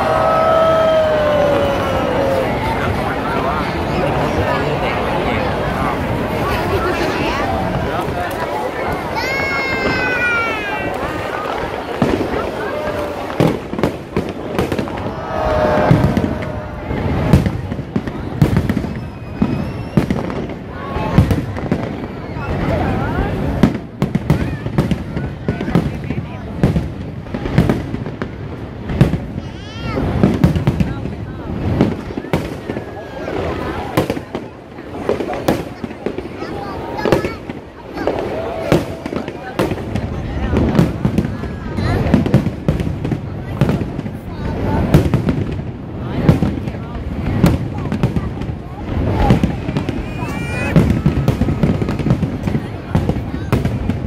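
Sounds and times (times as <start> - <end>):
crowd chattering: 0.0 - 54.0
fireworks bangs and crackles: 0.0 - 54.0.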